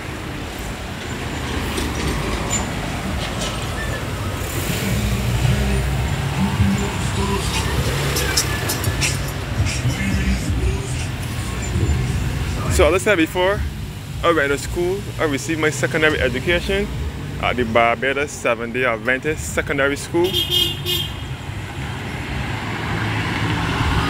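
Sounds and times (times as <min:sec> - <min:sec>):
cars driving past: 0:00.0 - 0:24.0.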